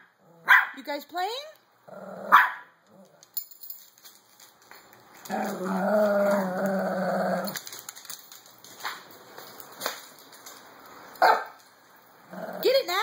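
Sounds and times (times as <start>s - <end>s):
dog barking: 0.4s - 0.8s, 2.3s - 2.7s, 11.2s - 11.6s
dog play growling: 1.8s - 3.4s, 5.2s - 8.2s, 12.2s - 12.7s.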